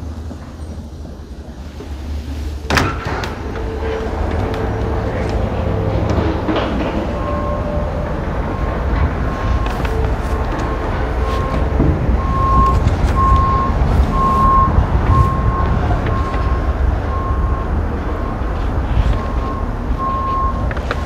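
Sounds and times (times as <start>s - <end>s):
engine and traffic rumble: 0.0s - 21.0s
vehicle backup alarm beeping: 2.4s - 21.0s.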